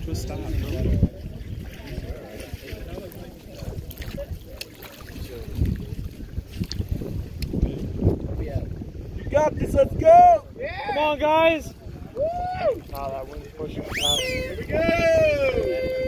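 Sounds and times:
faint distant voices: 0.0s - 6.6s
wind buffeting microphone: 0.0s - 16.0s.

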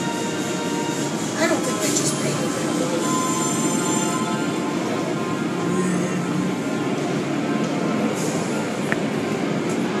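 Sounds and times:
car wash machinery: 0.0s - 10.0s.

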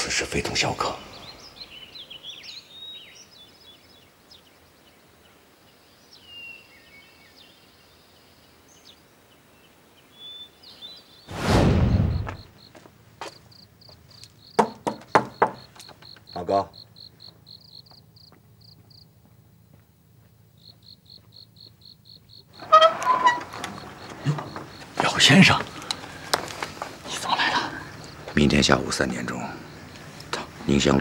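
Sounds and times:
cricket chirping: 0.0s - 31.0s
faint chirping: 0.0s - 31.0s
loud whoosh: 11.3s - 12.5s
sharp knocks: 14.6s - 15.7s.

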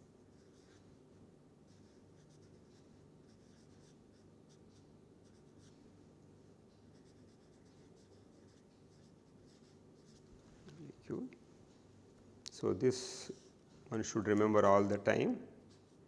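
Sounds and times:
marker scratching on paper: 0.3s - 0.9s, 1.7s - 5.8s, 6.7s - 10.4s.

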